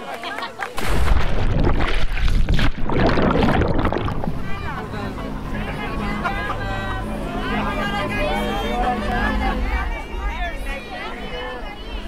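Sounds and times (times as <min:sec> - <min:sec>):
water splashing and churning: 0:00.7 - 0:04.9
boat engine humming: 0:01.1 - 0:12.0
voices calling out: 0:04.3 - 0:12.0.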